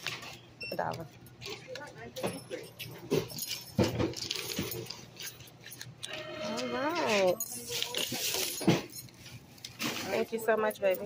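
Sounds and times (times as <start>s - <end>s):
clicks and clinks of handling: 1.3s - 6.2s, 7.0s - 11.0s.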